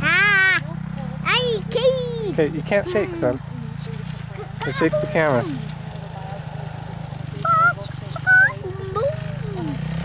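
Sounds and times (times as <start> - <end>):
distant dirt bike engine: 0.0 - 10.0
child making high-pitched sounds: 7.5 - 9.2.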